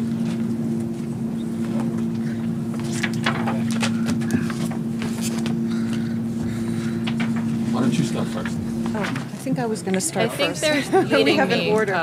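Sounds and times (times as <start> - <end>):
steady low hum: 0.0 - 12.0
distant murmured voices: 1.1 - 12.0.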